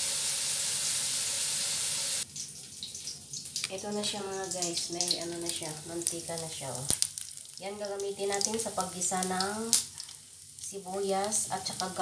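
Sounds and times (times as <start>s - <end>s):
fat sizzling in a wok: 0.0s - 12.0s.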